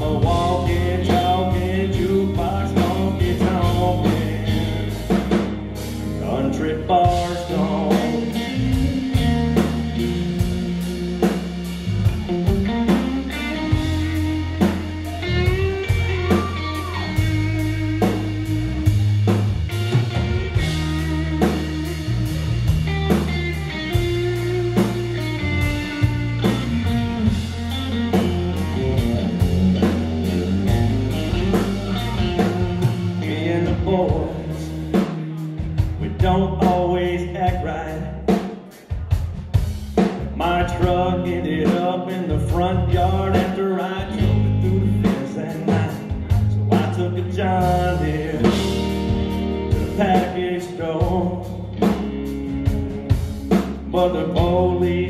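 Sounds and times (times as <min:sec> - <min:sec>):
electric guitar lead with bent notes: 0:00.0 - 0:38.4, 0:39.3 - 0:55.0
bass guitar: 0:00.0 - 0:55.0
steady drum kit beat: 0:00.0 - 0:55.0.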